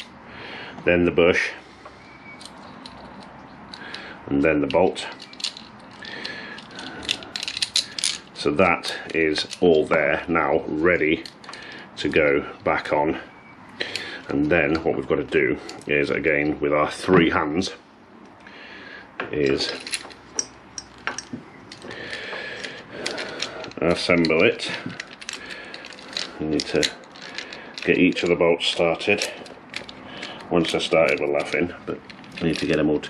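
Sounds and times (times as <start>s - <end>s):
small metal parts clicking and rattling: 2.2s - 10.0s, 11.0s - 11.9s, 19.4s - 33.0s.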